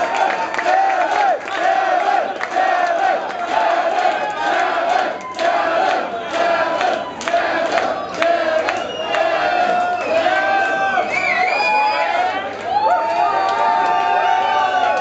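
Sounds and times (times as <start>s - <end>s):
crowd chanting: 0.0s - 11.1s.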